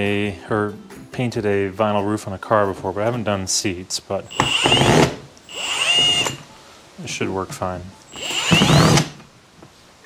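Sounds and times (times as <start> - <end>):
cordless drill motor whine: 4.3 - 6.4, 8.1 - 9.2.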